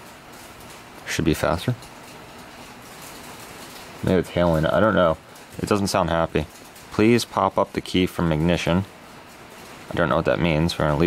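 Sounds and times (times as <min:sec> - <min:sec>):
hail patter on roof: 0:00.0 - 0:11.0.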